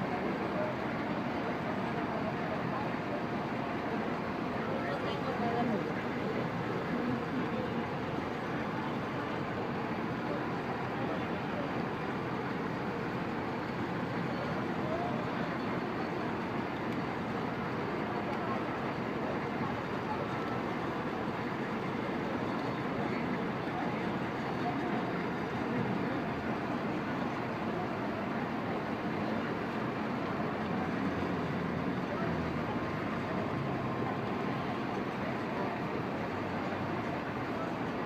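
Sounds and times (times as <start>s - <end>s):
street traffic: 0.0s - 38.0s.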